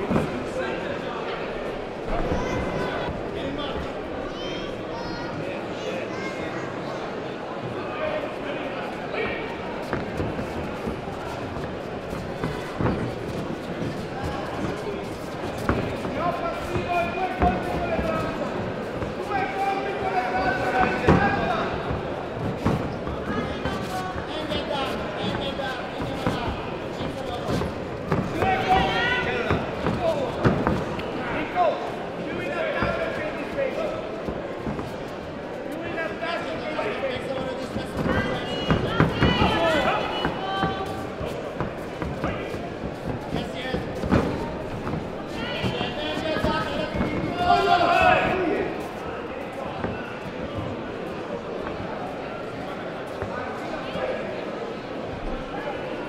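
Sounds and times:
coaches and spectators shouting: 15.7 - 18.6, 19.2 - 22.0, 23.1 - 34.1, 35.7 - 42.6, 43.3 - 50.2.

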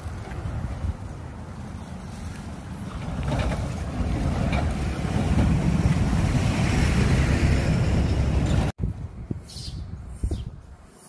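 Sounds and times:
lorry engine and tyre rumble: 0.0 - 10.9.

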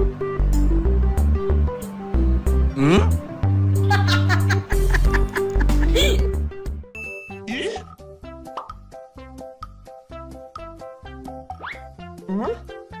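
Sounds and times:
playful children's background music: 0.0 - 13.0
boing sound effects: 7.5 - 8.8, 11.6 - 12.7.

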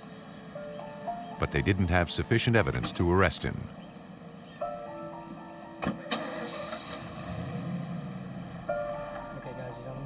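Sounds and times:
background music: 0.3 - 10.0
low engine rumble: 1.2 - 10.0
truck door shutting: 5.8 - 8.2.

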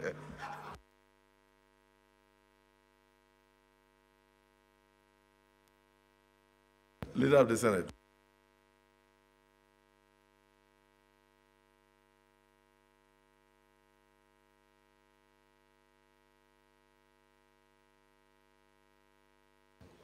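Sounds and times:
faint mains hum: 0.0 - 20.0
room noise: 19.8 - 20.0.

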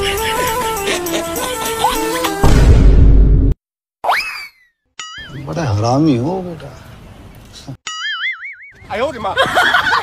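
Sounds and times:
cartoon boing sound effect: 7.9 - 8.8.

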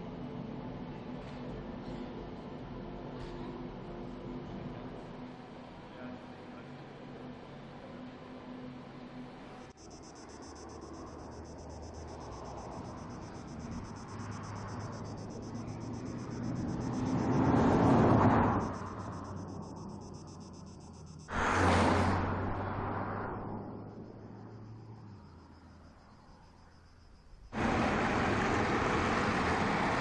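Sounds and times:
car driving by: 10.5 - 25.8, 27.5 - 30.0.

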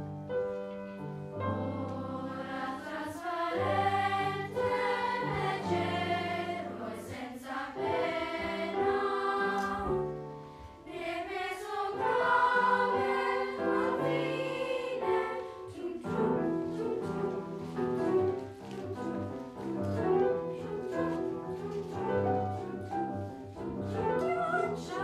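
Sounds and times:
piano accompaniment: 0.0 - 25.0
children's chorus singing: 1.7 - 10.2, 10.8 - 17.8, 24.2 - 25.0.

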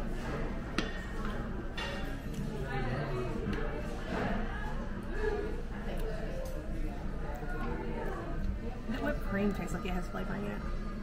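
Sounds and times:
indistinct diners' voices: 0.0 - 11.0.

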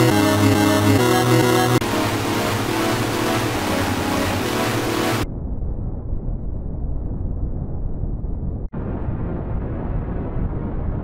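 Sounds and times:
loud harsh distorted noise: 0.0 - 5.3.

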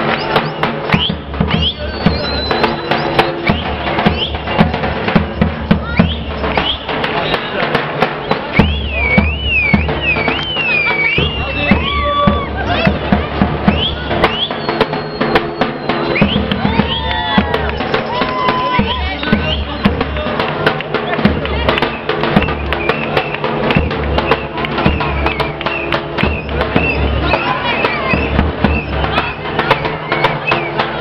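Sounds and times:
crowd voices: 0.0 - 31.0
drum beating fast: 0.0 - 31.0
live music: 0.0 - 31.0.

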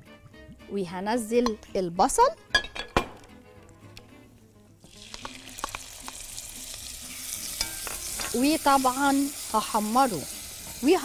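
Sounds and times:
onion sizzling in hot oil: 4.9 - 11.0.

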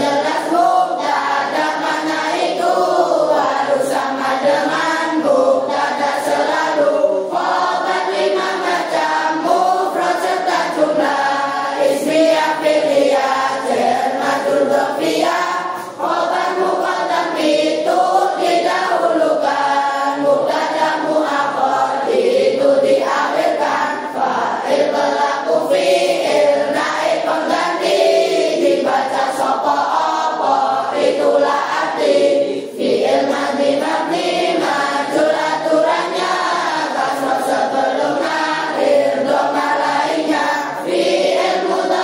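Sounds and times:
children singing in unison: 0.0 - 42.0.

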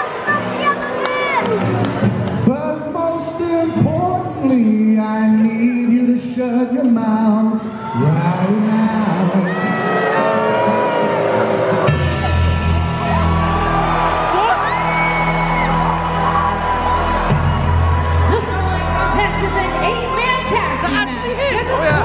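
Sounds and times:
crowd singing and whooping: 2.4 - 22.0
loud music with heavy bass: 11.8 - 22.0.

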